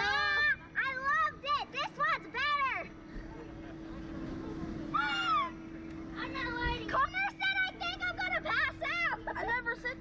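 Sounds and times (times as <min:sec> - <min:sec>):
low hum: 0:00.0 - 0:10.0
child squealing: 0:04.9 - 0:05.6.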